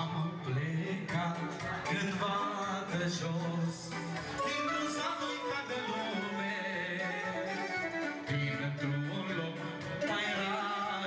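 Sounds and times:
live band music: 0.0s - 11.0s
person singing: 0.0s - 11.0s.

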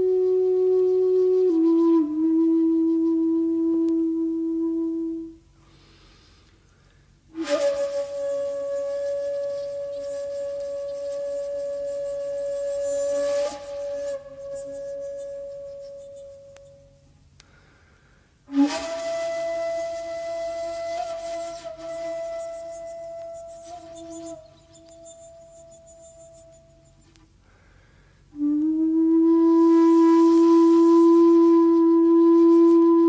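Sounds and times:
bamboo flute held notes: 0.0s - 17.7s, 18.5s - 33.0s.

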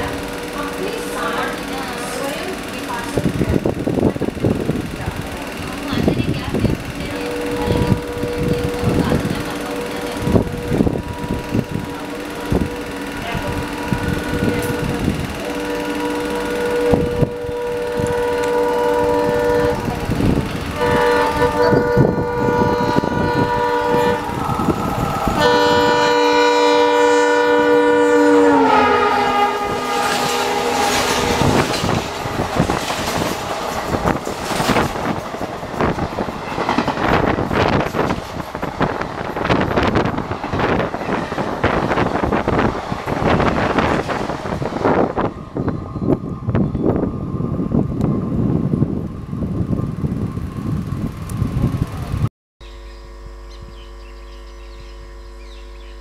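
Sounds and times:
train wheels clattering: 0.0s - 47.0s
locomotive horn blasts: 0.0s - 47.1s, 52.6s - 56.0s.

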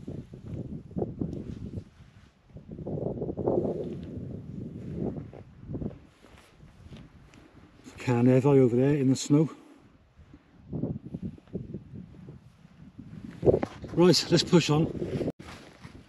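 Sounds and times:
footsteps in rough grass: 3.6s - 8.0s, 15.1s - 16.0s.

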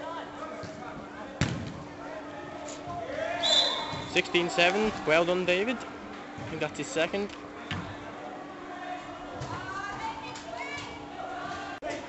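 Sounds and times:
players shouting: 2.4s - 5.8s.

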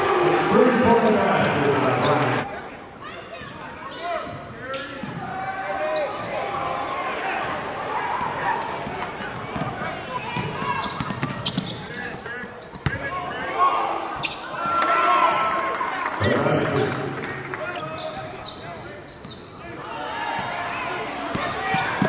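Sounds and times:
voices echoing in a hall: 0.0s - 22.0s.

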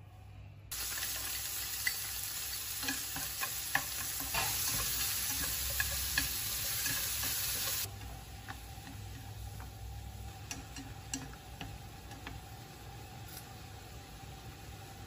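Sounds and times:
food sizzling in a frying pan: 0.7s - 15.0s
chopsticks clicking against pan: 10.4s - 12.5s.

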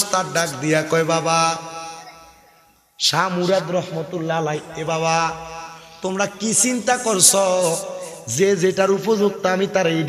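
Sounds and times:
man chanting in sung melody: 0.0s - 1.8s, 3.0s - 10.0s.

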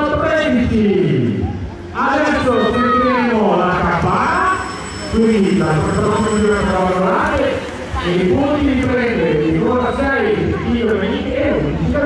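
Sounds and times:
race commentator talking: 0.0s - 12.0s.

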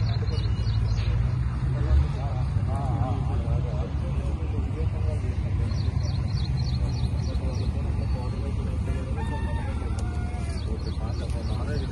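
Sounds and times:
rooster crowing: 9.1s - 10.6s.

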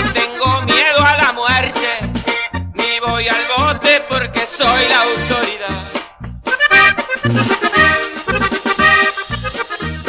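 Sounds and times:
accordion melody: 0.0s - 10.0s
two-beat bass line: 0.0s - 10.0s.

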